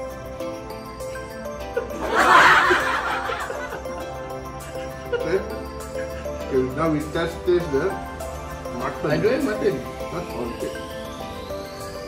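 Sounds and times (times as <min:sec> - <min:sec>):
soft background music: 0:00.0 - 0:12.0
men laughing: 0:01.6 - 0:07.1.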